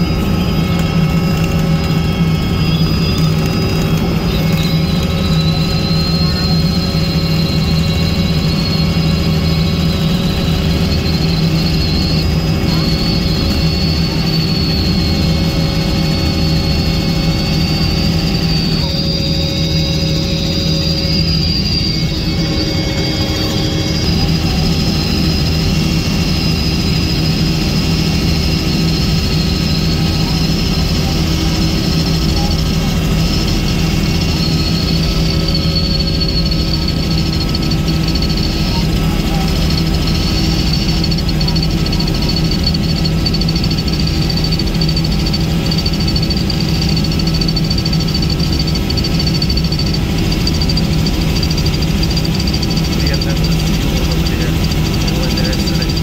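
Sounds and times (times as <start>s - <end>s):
helicopter engine and rotor drone: 0.0s - 56.0s
high-pitched whine: 0.0s - 56.0s.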